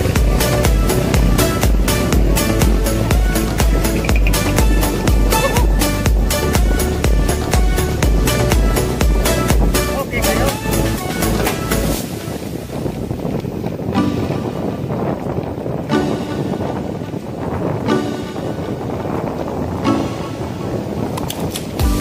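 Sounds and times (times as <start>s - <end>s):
sparse background music chords: 0.0s - 12.8s, 13.8s - 15.1s, 15.8s - 22.0s
wind rush on microphone: 0.0s - 22.0s.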